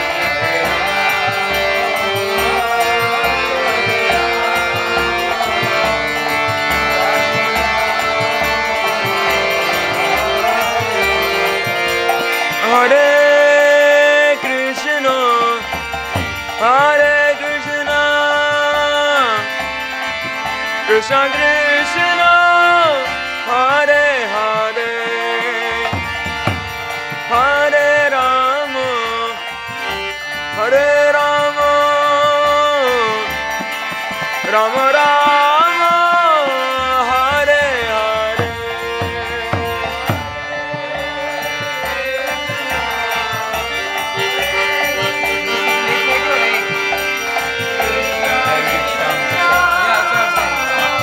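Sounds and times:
person chanting: 0:00.0 - 0:15.7, 0:34.4 - 0:51.0
hand drum: 0:00.0 - 0:23.1, 0:25.3 - 0:30.1, 0:31.4 - 0:51.0
harmonium: 0:00.0 - 0:51.0
hand cymbals jingling: 0:31.1 - 0:51.0.

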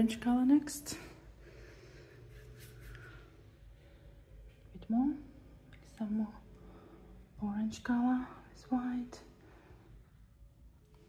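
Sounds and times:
paintbrush brushing on canvas: 0:02.3 - 0:03.2.

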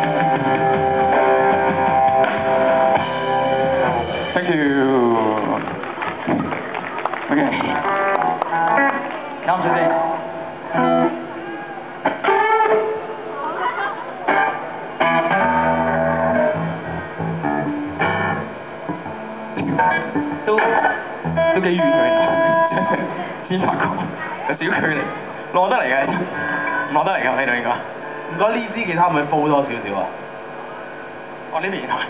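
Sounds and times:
electric guitar notes: 0:00.0 - 0:28.9
bass guitar notes: 0:00.0 - 0:29.1.

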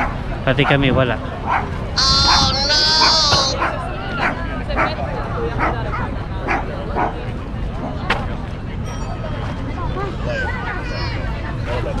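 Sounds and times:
small dog barking: 0:01.5 - 0:04.9.

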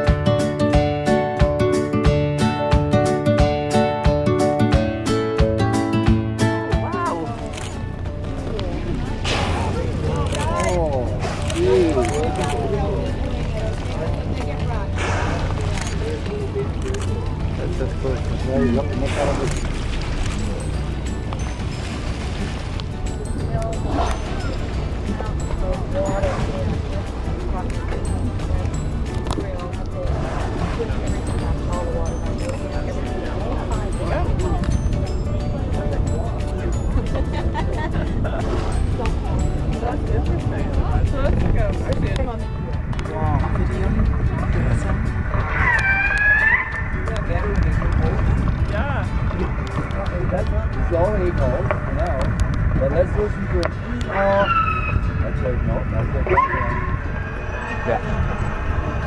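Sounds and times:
boat engine humming: 0:00.0 - 0:59.0
orcas calling: 0:45.3 - 0:47.2, 0:54.0 - 0:55.4, 0:56.0 - 0:59.0.

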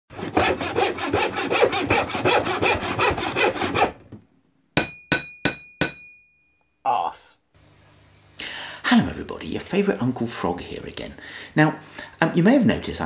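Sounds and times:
fast sawing strokes: 0:00.1 - 0:04.0
ringing metallic strikes: 0:04.8 - 0:06.6.

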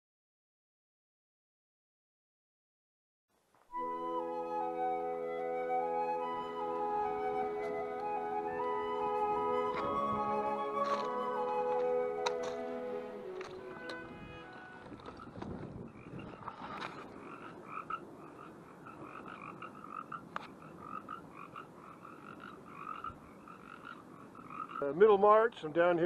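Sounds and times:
background music: 0:03.8 - 0:15.0
frogs croaking: 0:13.3 - 0:25.7.

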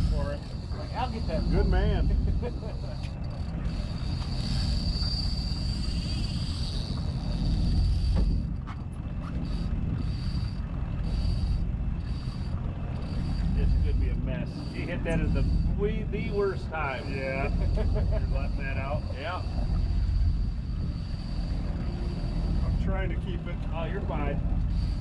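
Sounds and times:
boat rumble: 0:00.0 - 0:25.0
fishing reel whining: 0:00.0 - 0:25.0
wind: 0:00.0 - 0:25.0.

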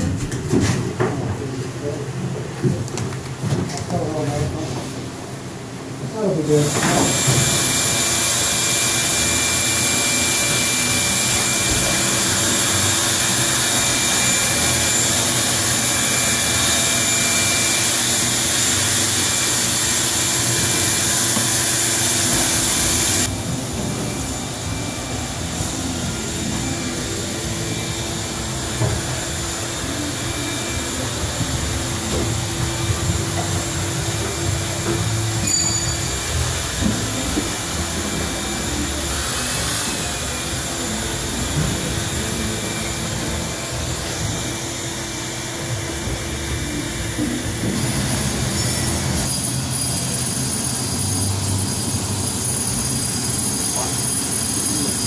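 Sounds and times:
workshop machinery whirring: 0:00.0 - 0:55.0
faint machine whine: 0:04.1 - 0:55.0.

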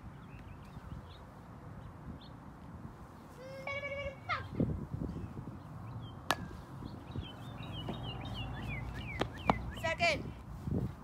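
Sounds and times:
birds chirping: 0:00.0 - 0:10.1
plastic bat hitting ball: 0:06.3 - 0:06.6.

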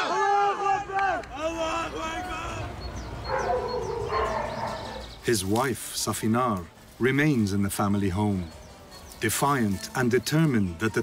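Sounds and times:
small birds chirping: 0:01.2 - 0:11.0.

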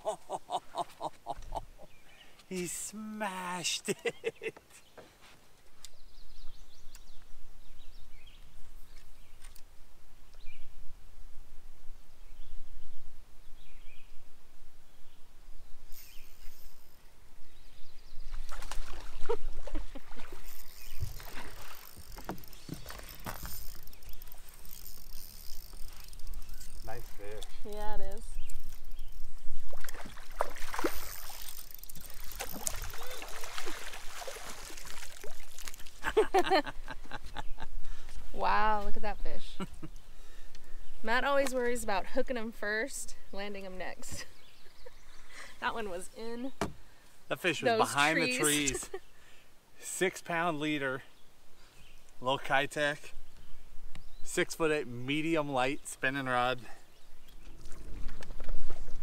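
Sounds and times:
water splashing: 0:18.4 - 0:24.7, 0:29.6 - 0:36.5
fishing reel working: 0:20.4 - 0:27.7, 0:30.9 - 0:33.1
excited vocal sounds: 0:47.7 - 0:48.9.

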